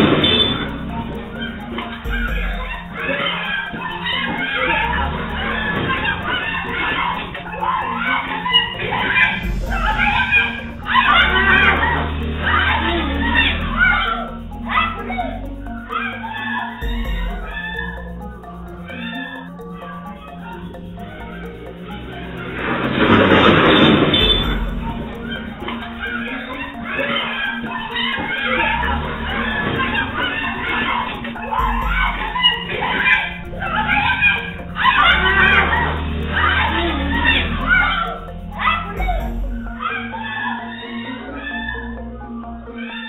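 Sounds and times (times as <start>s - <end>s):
rooster crowing and clucking: 0.0s - 41.8s
background music: 0.0s - 43.0s.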